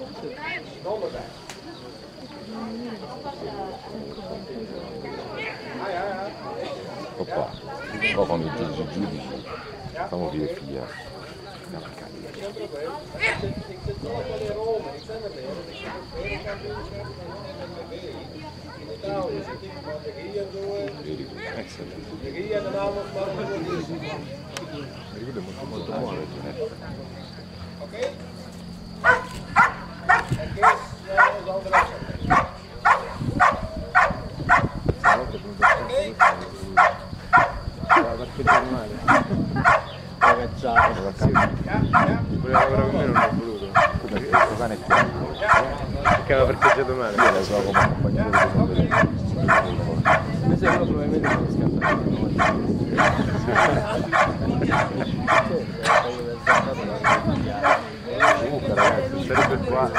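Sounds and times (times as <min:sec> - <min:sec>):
dog barking rhythmically: 0:29.0 - 0:59.9.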